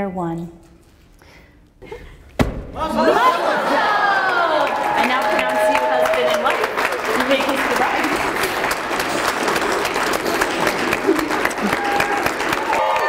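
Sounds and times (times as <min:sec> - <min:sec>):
crowd applauding: 0:02.8 - 0:13.0.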